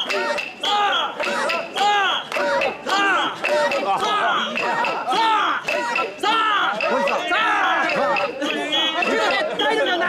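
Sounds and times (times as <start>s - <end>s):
crowd calling out together: 0.0s - 10.0s.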